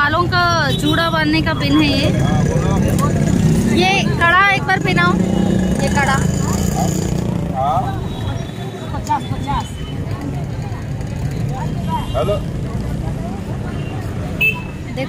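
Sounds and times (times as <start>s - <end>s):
low traffic rumble: 0.0s - 15.0s
voices talking: 0.0s - 15.0s.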